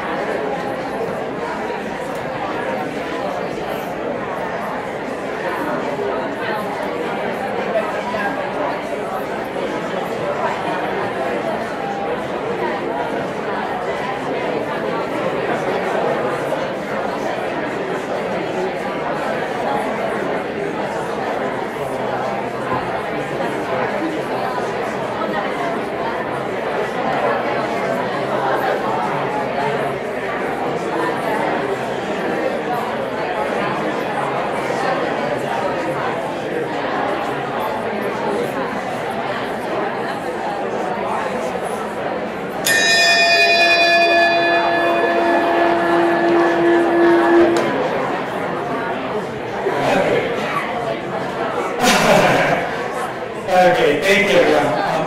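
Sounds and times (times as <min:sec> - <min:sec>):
hubbub of overlapping voices: 0:00.0 - 0:55.0
murmured conversation: 0:00.0 - 0:55.0
bell-like chime ringing: 0:42.6 - 0:48.4.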